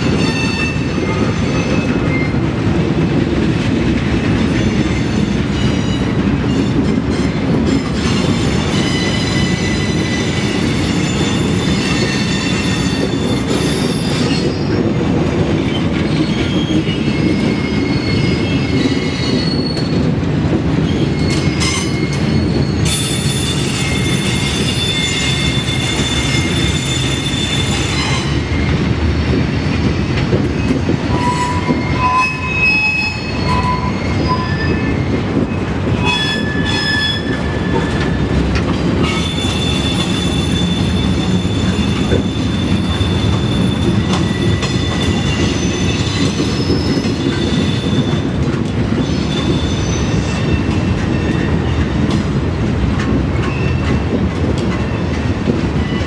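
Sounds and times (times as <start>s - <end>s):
train wheels squealing: 0.0s - 2.4s, 4.5s - 15.0s, 15.6s - 20.0s, 20.8s - 28.9s, 30.6s - 52.2s, 53.3s - 54.1s, 55.8s - 56.0s
railcars rumbling: 0.0s - 56.0s.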